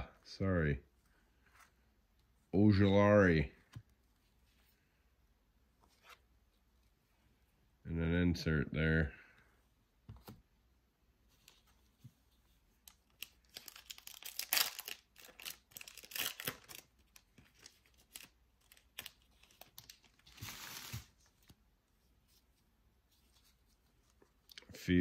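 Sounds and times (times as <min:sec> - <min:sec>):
foil wrappers crinkling and tearing: 0:13.2 - 0:21.1.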